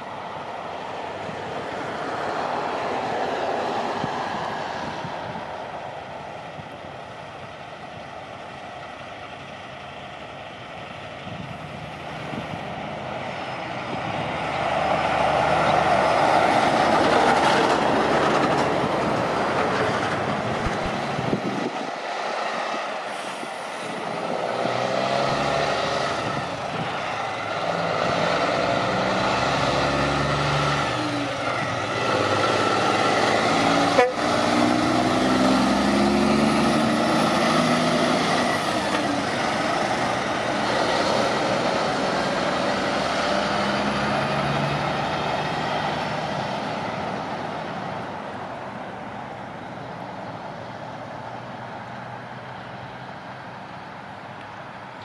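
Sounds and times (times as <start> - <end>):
truck diesel engines driving by: 0.0 - 55.0.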